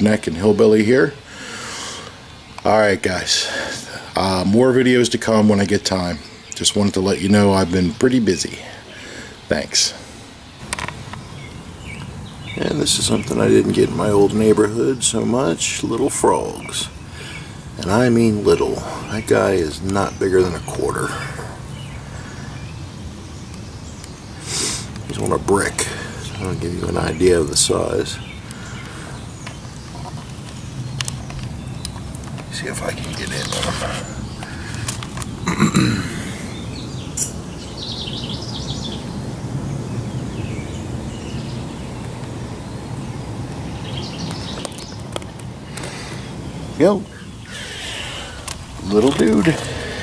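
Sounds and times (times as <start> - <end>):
high chirping: 0.0 - 50.0.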